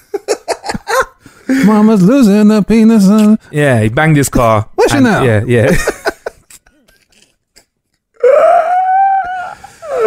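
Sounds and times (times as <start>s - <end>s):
person's long high cry: 8.2s - 10.0s.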